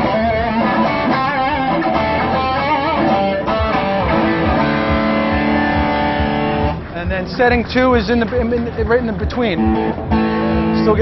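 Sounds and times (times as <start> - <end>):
overdriven electric guitar: 0.0 - 7.4, 8.1 - 11.0.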